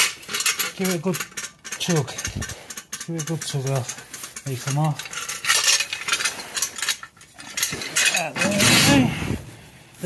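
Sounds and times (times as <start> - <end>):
metal clips clinking and rattling: 0.0 - 9.0.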